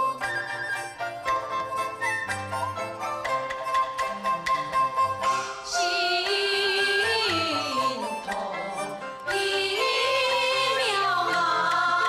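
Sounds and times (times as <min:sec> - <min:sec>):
instrumental accompaniment: 0:00.0 - 0:12.0.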